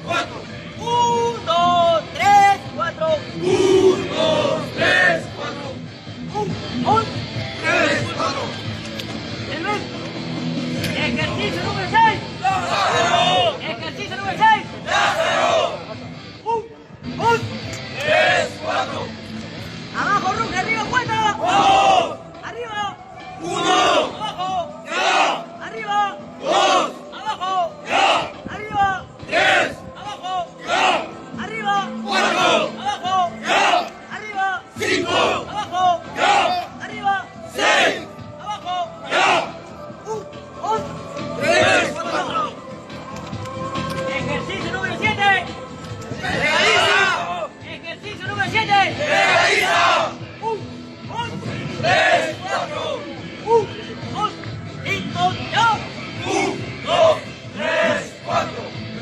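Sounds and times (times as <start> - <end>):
group shouting in rhythm: 0.0 - 0.5, 3.3 - 5.8, 7.6 - 8.5, 12.4 - 13.6, 14.5 - 15.9, 17.2 - 19.2, 21.3 - 22.2, 23.4 - 36.8, 37.5 - 42.6, 46.0 - 47.5, 48.7 - 50.6, 51.2 - 53.7, 56.2 - 58.7.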